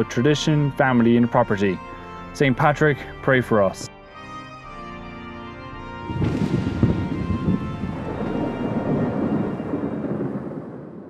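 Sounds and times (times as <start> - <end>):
deep thunder-like rumble: 6.0 - 11.0.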